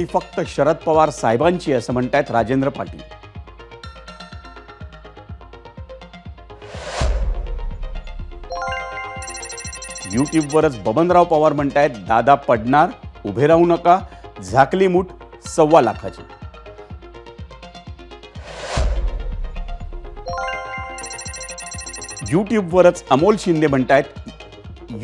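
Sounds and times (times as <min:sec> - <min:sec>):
chime-like chord: 0:08.5 - 0:10.3, 0:20.3 - 0:22.4.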